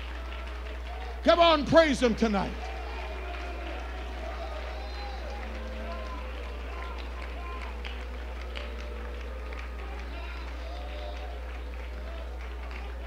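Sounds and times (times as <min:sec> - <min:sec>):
congregation voices praising aloud: 0:00.0 - 0:13.0
steady low hum: 0:00.0 - 0:13.0.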